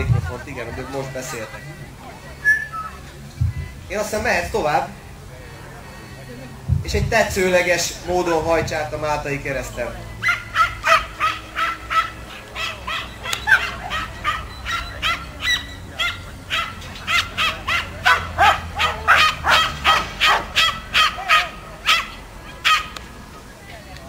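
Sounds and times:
puppy yapping: 10.2 - 23.0.

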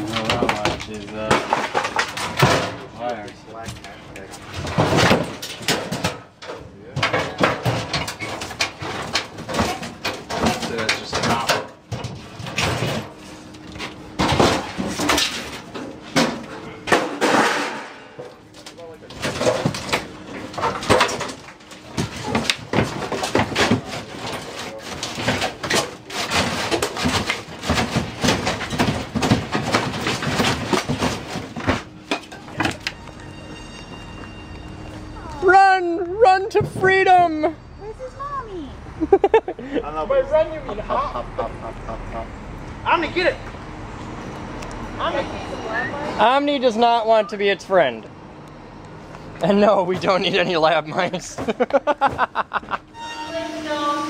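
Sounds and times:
knocks and scrapes of debris: 0.0 - 33.1.

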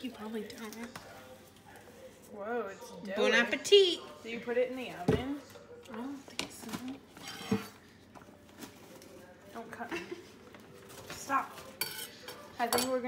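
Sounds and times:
paper rustling and crinkling: 7.8 - 9.6, 10.2 - 11.8.

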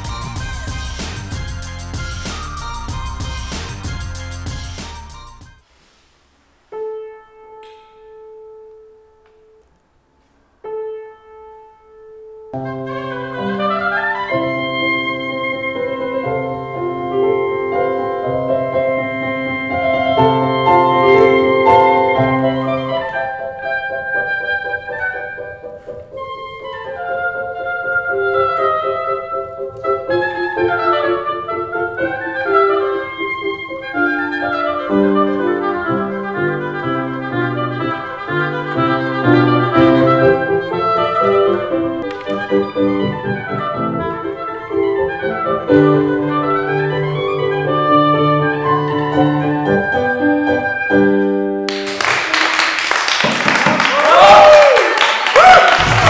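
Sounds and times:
oboe playing classical solo: 0.0 - 5.6, 11.7 - 51.7
piano accompaniment: 0.0 - 5.6, 6.7 - 9.6, 10.6 - 54.8.

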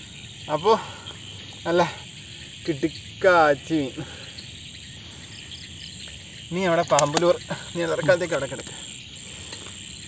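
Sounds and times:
crickets calling: 0.0 - 10.0
man speaking: 6.5 - 8.8.

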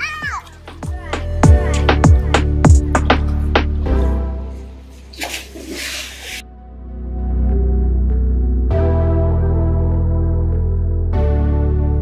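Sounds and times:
background music: 0.0 - 12.0
pool water splashing: 4.8 - 6.4.

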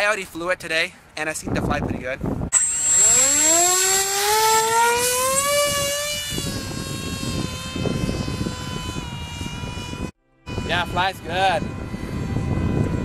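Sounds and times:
wind rumble on microphone: 1.4 - 2.6, 4.9 - 13.0
electric motor propeller whine: 2.5 - 13.0.

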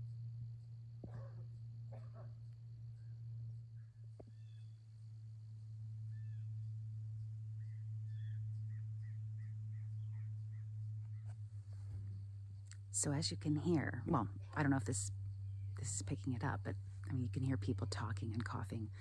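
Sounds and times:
steady low hum: 0.0 - 19.0
small bird chirping: 1.0 - 5.2, 6.0 - 12.7.

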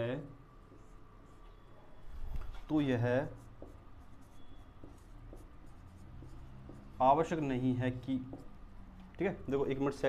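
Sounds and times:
marker scratching on whiteboard: 2.6 - 9.9.

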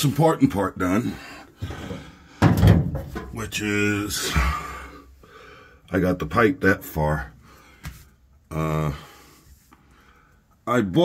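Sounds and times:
heavy thump: 1.6 - 3.4.

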